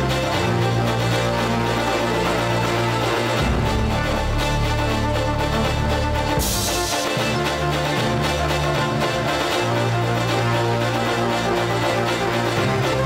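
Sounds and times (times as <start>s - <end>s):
sustained bass notes: 0.0s - 13.0s
synthesizer keyboard: 0.0s - 13.0s
violin: 0.0s - 13.0s
bright cymbal crash: 3.4s - 8.4s.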